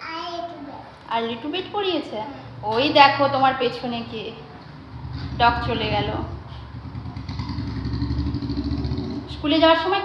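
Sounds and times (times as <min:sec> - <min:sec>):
small engine idling: 0:04.8 - 0:09.2.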